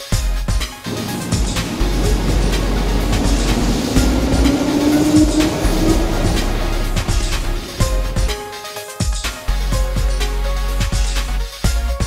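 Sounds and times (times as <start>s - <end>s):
wheels clicking over rail joints: 0.8s - 8.4s
electric train whine: 0.8s - 8.6s.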